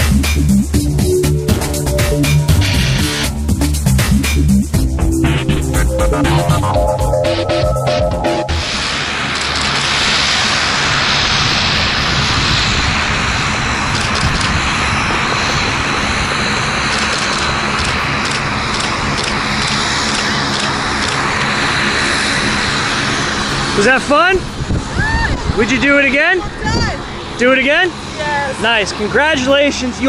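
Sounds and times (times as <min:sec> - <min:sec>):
wind rushing across microphone: 0:08.6 - 0:28.4.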